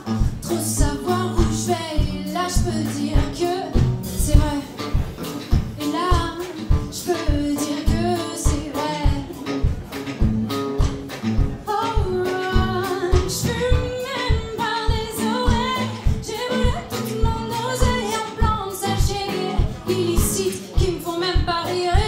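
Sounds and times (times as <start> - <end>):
woman singing into microphone: 0.0 - 10.4, 11.4 - 22.0
acoustic guitar: 0.0 - 22.0
drums steady beat: 0.0 - 22.0.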